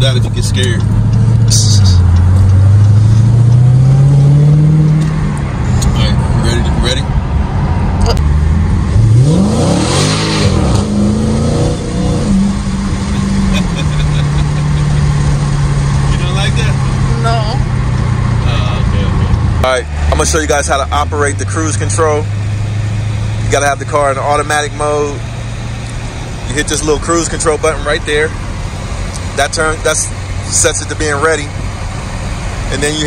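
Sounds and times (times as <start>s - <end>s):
car engine accelerating: 0.0s - 33.0s.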